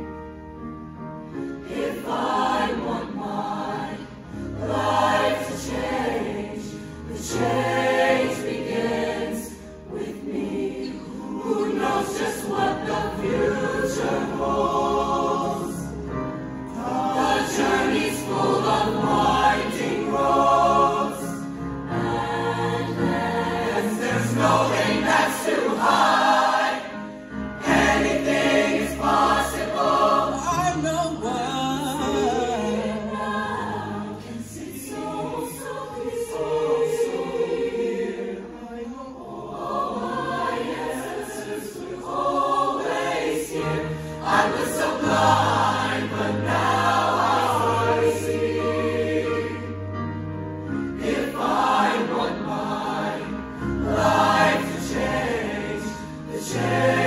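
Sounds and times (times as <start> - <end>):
backing music: 0.0 - 57.0
choir singing in harmony: 0.0 - 57.0.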